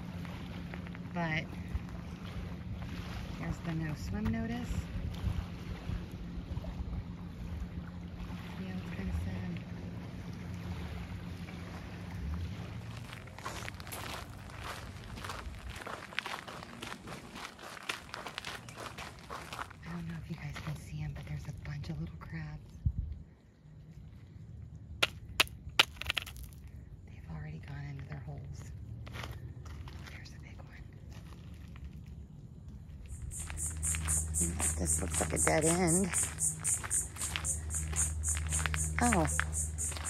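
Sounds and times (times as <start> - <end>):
steady low hum: 0.0 - 40.0
wind on microphone: 1.7 - 7.6, 22.8 - 23.2.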